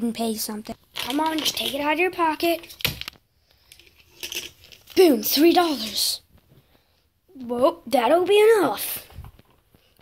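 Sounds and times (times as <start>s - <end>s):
small objects clicking and rustling: 0.7s - 6.0s.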